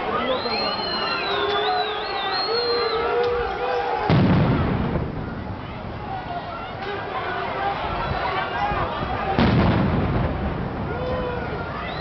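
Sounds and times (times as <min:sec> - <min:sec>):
people shouting: 0:00.0 - 0:04.3, 0:05.6 - 0:09.6, 0:10.8 - 0:12.0
loud bang with low rumble: 0:04.1 - 0:05.5.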